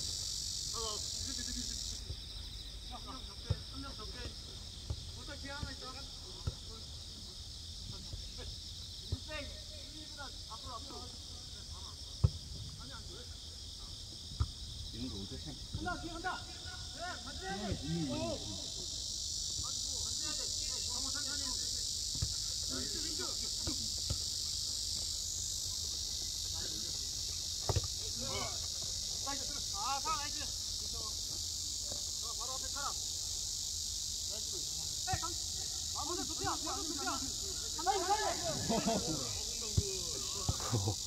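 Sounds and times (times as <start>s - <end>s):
high-pitched insect drone: 0.0s - 4.0s, 14.9s - 41.0s
distant shouts: 15.8s - 19.0s, 35.0s - 40.9s.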